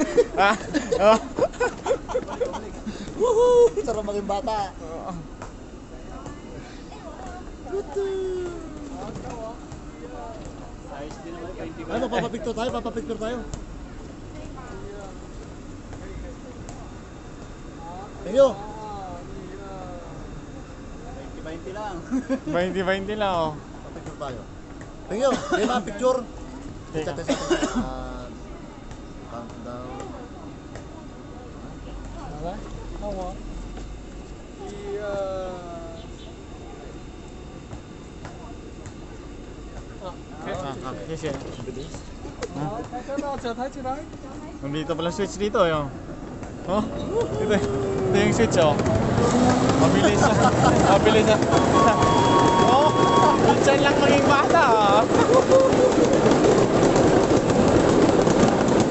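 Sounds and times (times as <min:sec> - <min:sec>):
people talking and laughing: 0:00.0 - 0:58.9
mini train rumbling: 0:30.1 - 0:58.9.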